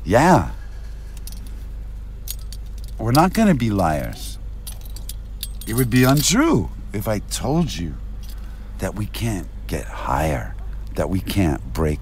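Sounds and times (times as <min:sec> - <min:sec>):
low hum: 0:00.0 - 0:12.0.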